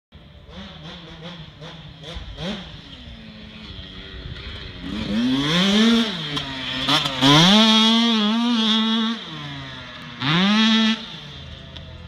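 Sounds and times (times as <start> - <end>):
distant dirt bike engine revving: 0.2 - 12.0.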